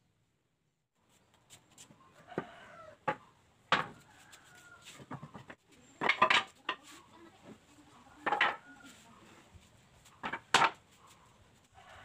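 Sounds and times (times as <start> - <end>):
wooden boards clattering on concrete: 3.0 - 4.0, 5.0 - 8.7, 10.1 - 10.9.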